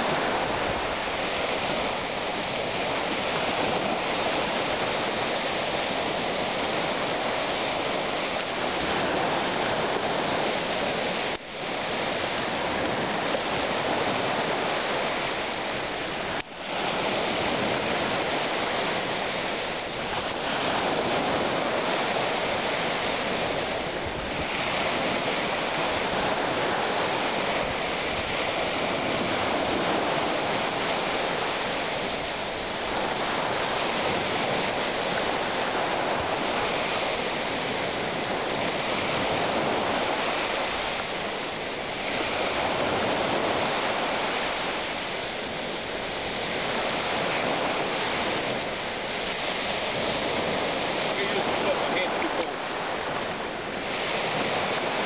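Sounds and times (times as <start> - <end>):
waves washing on gravel beach: 0.0 - 55.0.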